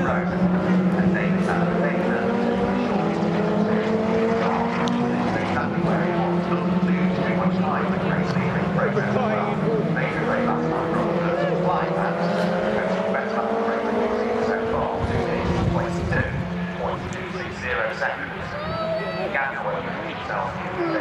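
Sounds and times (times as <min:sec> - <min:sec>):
race car engine accelerating past: 0:00.0 - 0:17.1.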